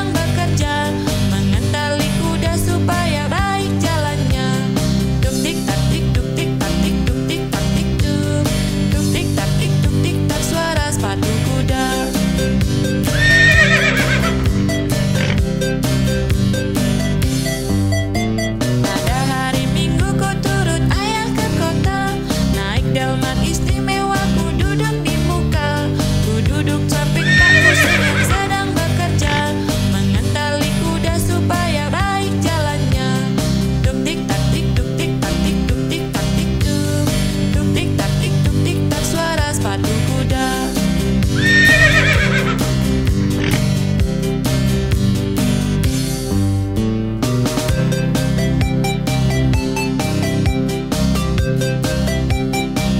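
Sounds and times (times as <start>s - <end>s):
background music with steady beat: 0.0s - 52.9s
horse whinnying: 13.0s - 15.4s, 27.2s - 29.6s, 41.4s - 42.7s, 43.4s - 43.7s
music with steady beat: 42.1s - 52.9s.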